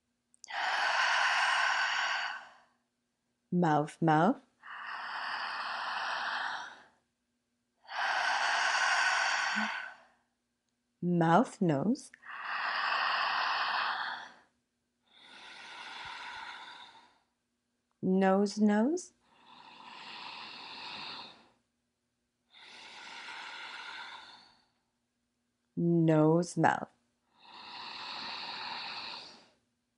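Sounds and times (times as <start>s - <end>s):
woman breathing through mouth: 0.5s - 2.7s, 4.6s - 7.0s, 7.8s - 10.2s, 12.2s - 17.3s, 22.5s - 24.8s, 27.4s - 29.6s.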